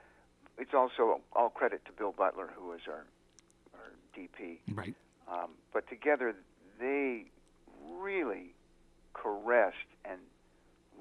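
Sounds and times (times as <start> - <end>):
man vocalizing wordless syllables: 4.7 - 5.0.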